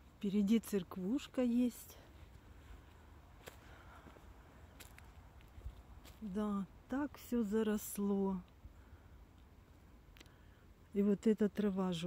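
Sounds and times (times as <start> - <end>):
faint clicks: 10.1 - 10.4.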